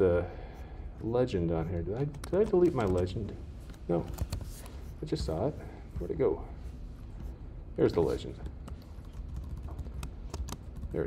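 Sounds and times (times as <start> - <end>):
computer keyboard clicks: 8.6 - 10.9.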